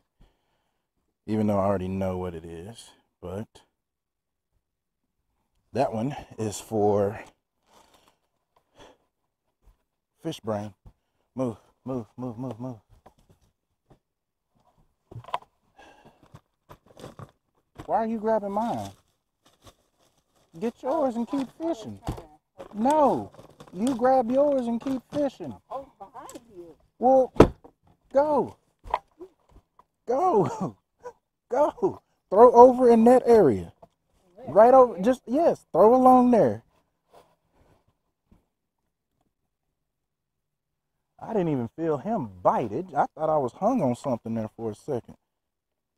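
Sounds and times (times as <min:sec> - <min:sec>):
handling clicks and rustles: 0:14.6 - 0:26.6.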